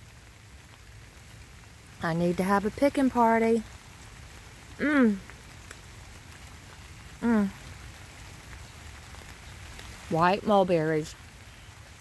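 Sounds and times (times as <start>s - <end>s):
faint outdoor hiss: 0.0s - 12.0s.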